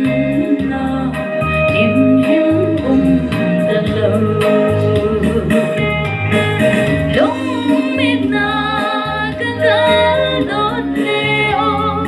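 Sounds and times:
bass line: 0.0 - 12.0
guitar: 0.0 - 12.0
woman singing into microphone: 0.0 - 12.0.

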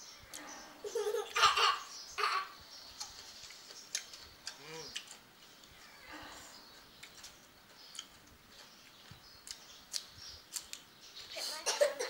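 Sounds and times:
quiet chewing: 2.9 - 11.4
lip-smack clicks: 9.4 - 10.9.

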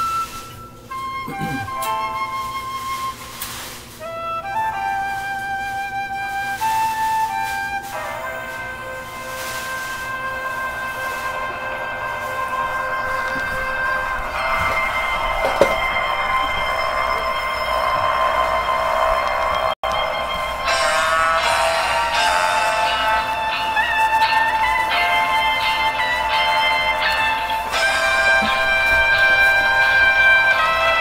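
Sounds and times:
orchestral music with held chords: 0.0 - 31.0.

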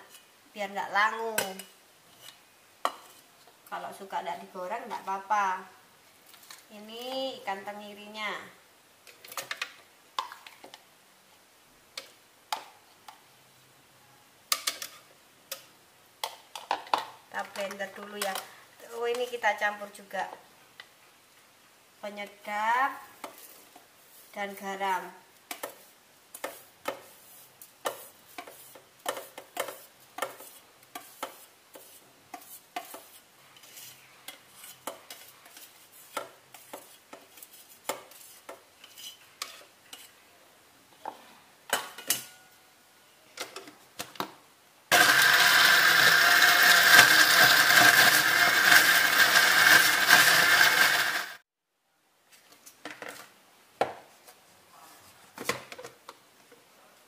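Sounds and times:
blender running: 44.9 - 51.4.

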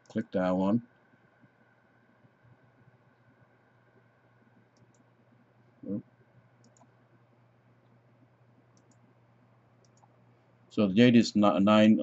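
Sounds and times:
low steady hum: 0.0 - 12.0
faint computer mouse clicks: 4.7 - 5.1, 6.6 - 7.0, 8.7 - 9.1, 9.8 - 10.2.

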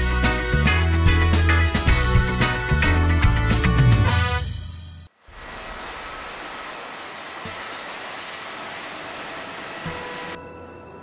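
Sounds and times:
airport rushing roar: 5.2 - 11.0.

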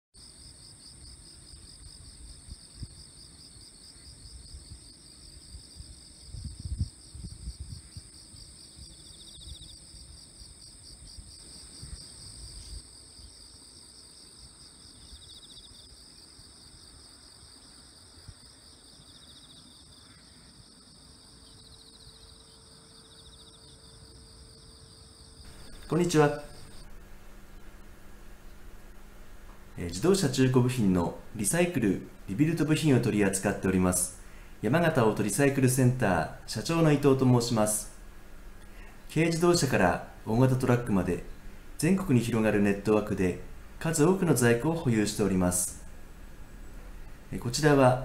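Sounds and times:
insects trilling: 0.2 - 48.0
short insect buzzing call: 25.4 - 29.0.

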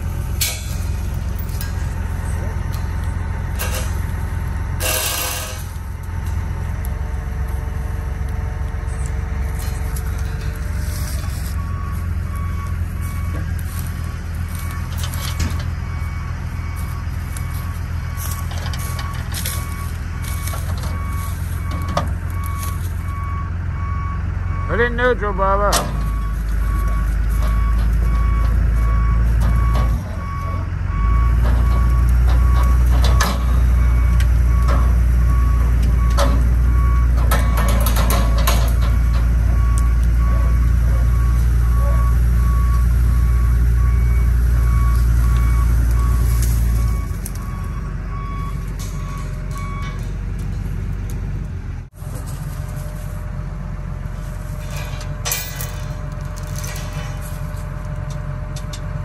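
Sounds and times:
tow chain clanking: 0.0 - 23.4, 25.7 - 53.0, 54.0 - 59.0
heavy machine engine running: 0.0 - 59.0
backup alarm beeping: 4.8 - 50.2.

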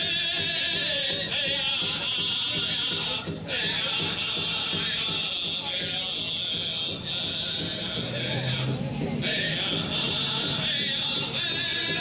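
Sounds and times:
drum steady beat: 0.0 - 12.0
group of singers: 6.5 - 12.0.

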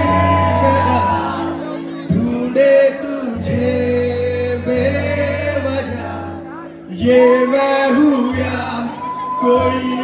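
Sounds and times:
man singing over a pa: 0.0 - 10.0.

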